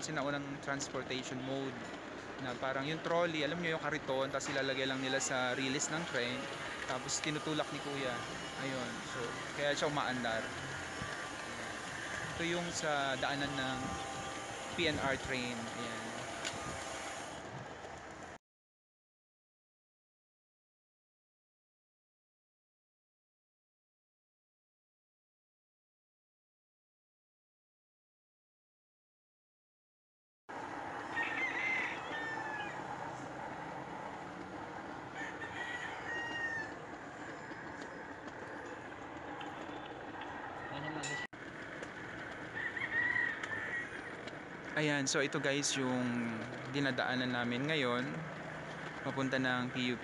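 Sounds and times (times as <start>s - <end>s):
trolley wheels rolling on rail track: 0.1s - 18.4s, 30.5s - 50.0s
rooster crowing: 5.2s - 12.8s, 30.9s - 34.1s, 34.9s - 38.6s, 40.4s - 41.3s, 42.5s - 44.2s.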